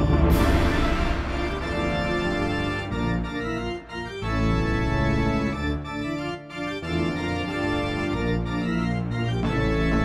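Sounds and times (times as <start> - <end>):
organ chords: 0.0 - 10.0.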